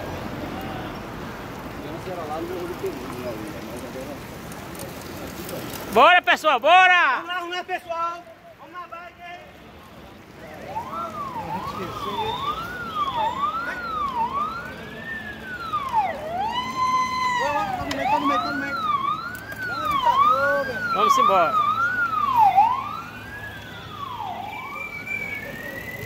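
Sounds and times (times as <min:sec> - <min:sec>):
emergency siren wailing: 0:09.9 - 0:26.0.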